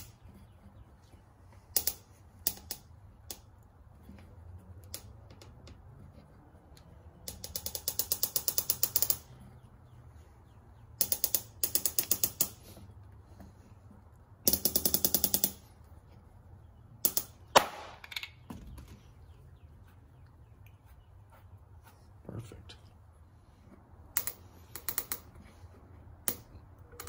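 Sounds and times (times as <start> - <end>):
ratchet knob clicking rapidly: 7.2 - 9.3, 11.0 - 12.6, 14.5 - 15.6.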